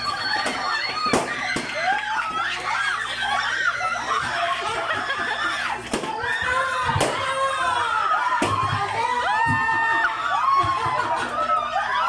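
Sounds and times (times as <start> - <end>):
people laughing and shrieking: 0.0 - 12.0.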